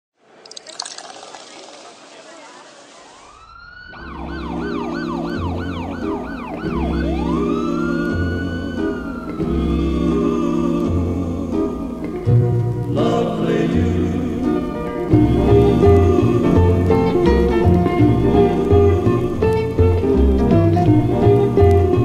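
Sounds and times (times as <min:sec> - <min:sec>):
noise hiss: 0:00.2 - 0:03.6
police siren: 0:02.5 - 0:09.9
music with bass line: 0:15.2 - 0:22.0.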